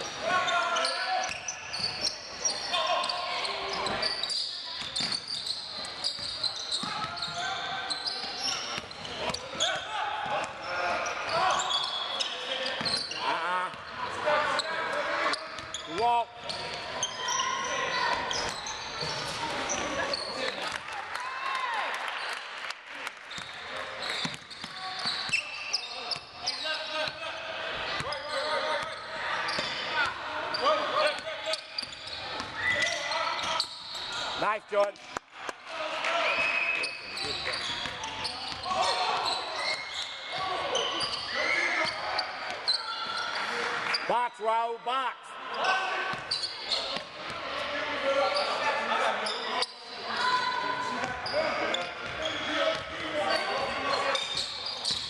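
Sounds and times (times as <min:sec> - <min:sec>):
indistinct shouts and chatter: 0:24.7 - 0:55.0.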